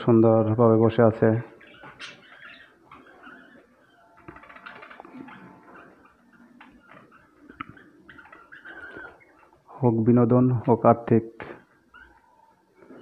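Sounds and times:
budgerigars chattering and chirping: 1.3s - 9.7s.

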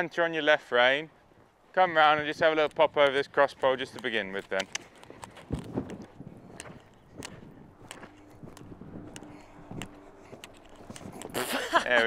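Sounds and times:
horse hoofbeats on sand: 1.4s - 11.5s
man's voice: 11.7s - 12.0s.

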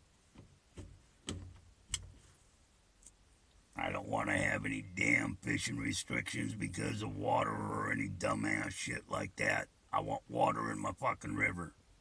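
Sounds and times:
faint clicks: 0.3s - 2.2s, 3.0s - 3.8s.

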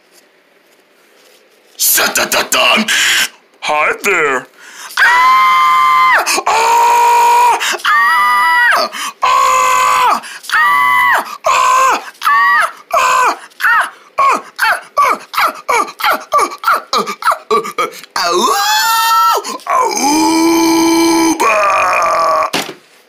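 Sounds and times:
person screaming: 2.6s - 3.4s, 5.0s - 22.6s.

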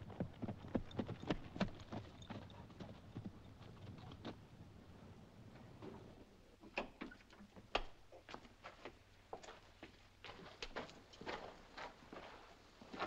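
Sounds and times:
faint footsteps on a path: 8.2s - 13.0s.

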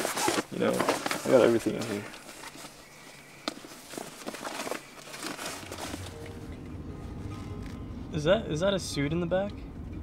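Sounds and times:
rummaging through clothes and bags: 0.0s - 7.8s
car driving rumble: 0.0s - 10.0s.

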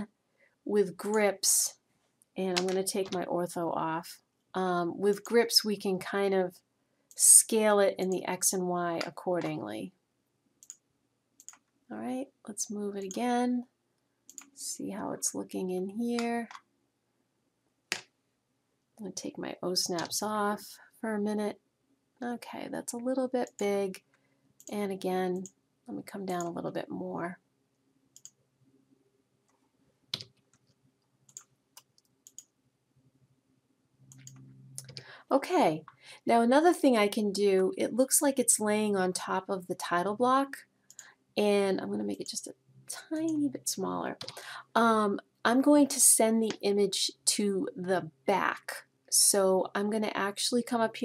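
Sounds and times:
computer mouse clicks: 10.6s - 10.8s, 11.4s - 11.7s, 14.3s - 14.6s, 28.1s - 28.4s, 30.2s - 32.5s, 34.1s - 35.1s, 40.9s - 41.1s.

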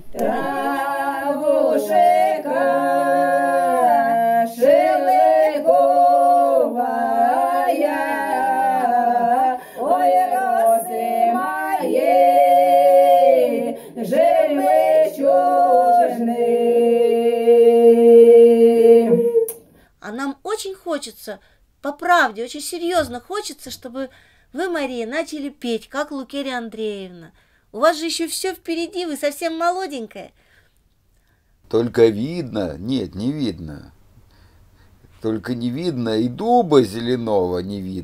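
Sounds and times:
women singing unaccompanied: 0.0s - 19.6s.

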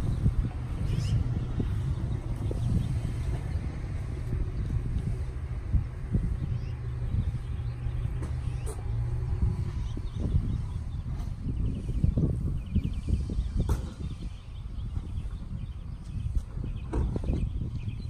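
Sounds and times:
low car engine rumble: 0.0s - 18.0s.

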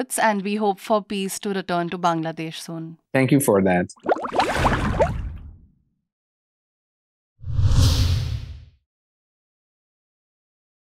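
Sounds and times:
whoosh with deep rumble: 7.4s - 8.7s.

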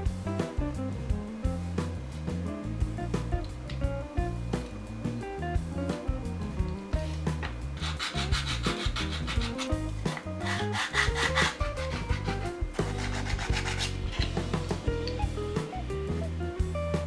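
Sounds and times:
plastic scraping on sandpaper: 7.8s - 14.4s.

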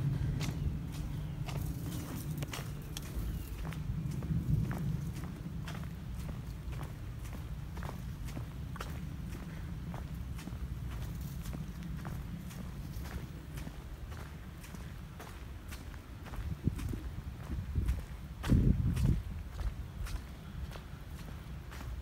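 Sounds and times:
low rumble: 0.0s - 19.8s
footsteps on brick pavers: 0.0s - 22.0s.

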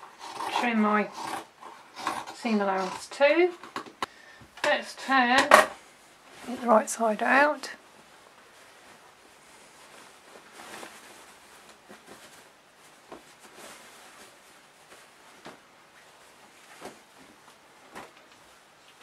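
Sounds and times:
fabric rustling: 5.8s - 19.0s.

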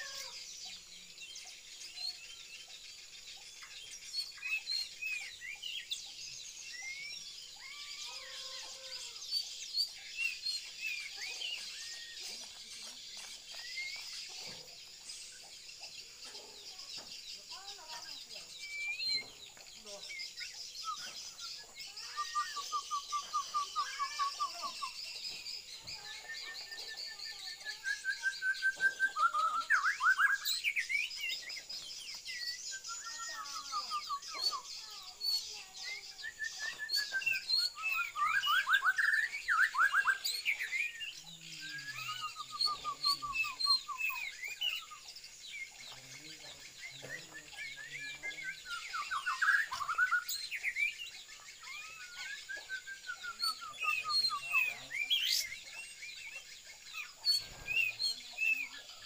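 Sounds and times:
songbirds chirping and trilling: 0.0s - 59.0s.

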